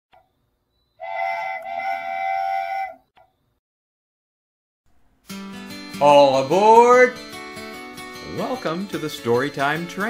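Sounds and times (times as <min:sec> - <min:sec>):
cartoon train whistle toots: 0:01.0 - 0:03.0.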